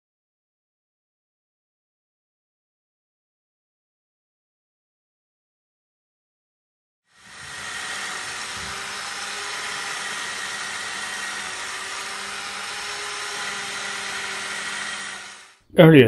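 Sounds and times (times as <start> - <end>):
electric drill motor whining: 7.1 - 15.6.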